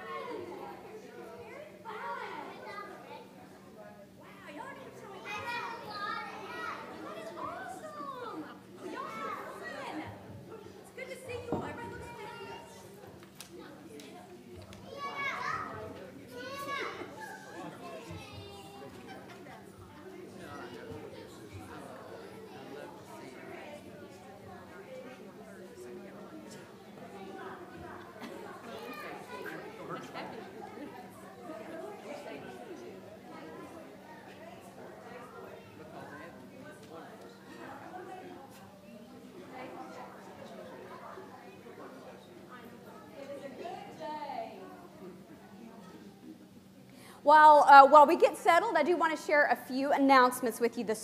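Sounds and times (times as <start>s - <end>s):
young children chattering: 0.0s - 51.0s.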